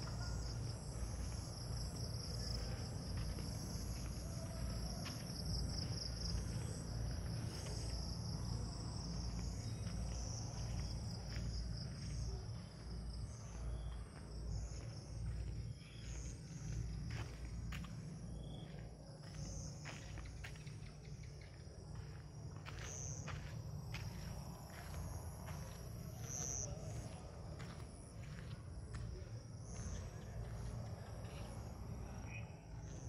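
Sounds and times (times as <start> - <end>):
night insects chirping: 0.0 - 33.0.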